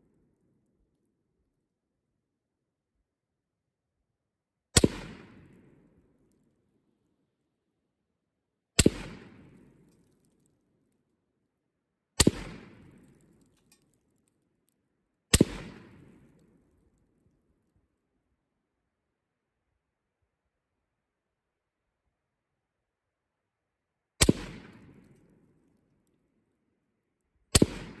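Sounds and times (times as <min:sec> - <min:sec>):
rifle shots with echo: 0:04.8 - 0:05.8, 0:08.8 - 0:09.9, 0:12.2 - 0:13.5, 0:15.3 - 0:16.4, 0:24.2 - 0:25.3, 0:27.5 - 0:28.0.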